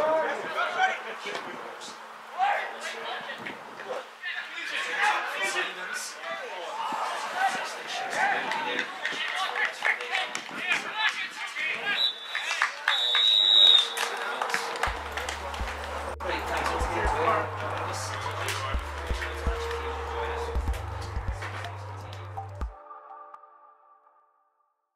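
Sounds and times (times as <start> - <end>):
players shouting: 0.0 - 22.6
referee's whistle: 11.9 - 14.2
music with deep steady bass: 14.9 - 22.7.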